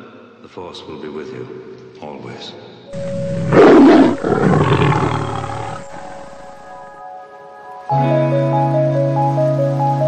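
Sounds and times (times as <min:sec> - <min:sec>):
animal-like roar: 0:03.0 - 0:06.9.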